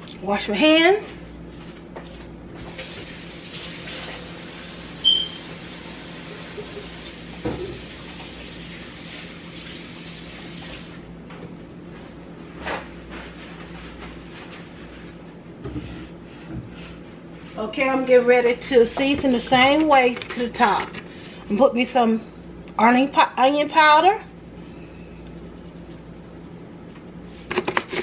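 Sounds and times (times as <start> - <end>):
tap running water: 2.6 - 11.0
short sharp squeak: 5.0 - 5.4.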